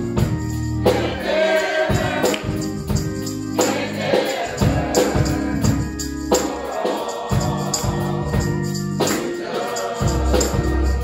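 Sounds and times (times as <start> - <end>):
live band: 0.0 - 11.0
tambourine jingling: 0.0 - 11.0
gospel choir singing: 0.4 - 11.0.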